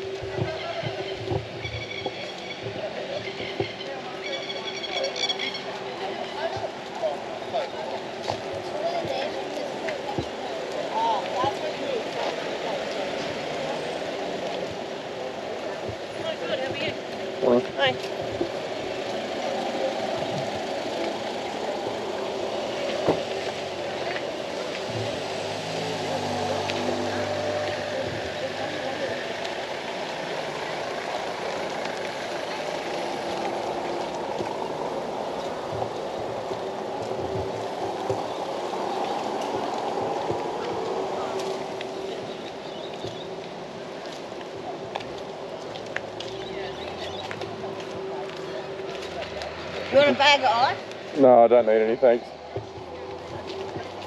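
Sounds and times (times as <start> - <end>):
indistinct voices: 0.0 - 54.0
vehicle engine passing: 18.6 - 42.7.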